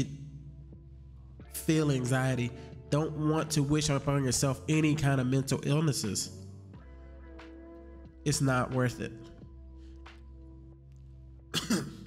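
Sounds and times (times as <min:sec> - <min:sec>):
quiet background music: 0:00.0 - 0:12.0
man coughing: 0:11.5 - 0:12.0.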